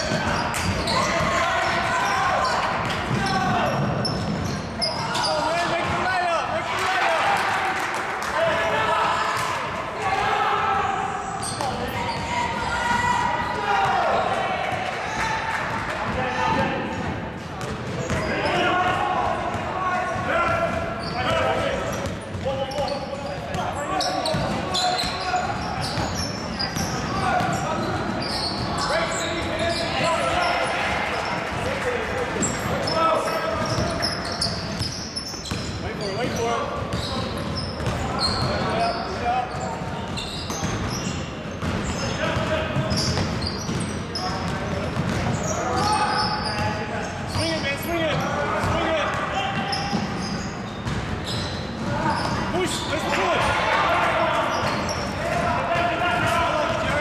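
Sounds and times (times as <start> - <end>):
voices calling out in hall: 0.0 - 57.0.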